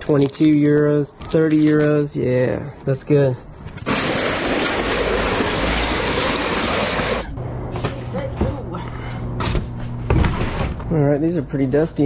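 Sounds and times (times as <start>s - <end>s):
steady low hum: 2.0s - 12.0s
plastic tote scraping: 3.8s - 7.2s.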